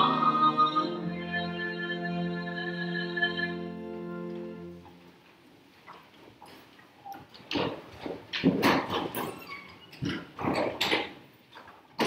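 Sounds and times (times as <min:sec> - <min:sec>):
rustling and knocking: 0:07.4 - 0:09.4.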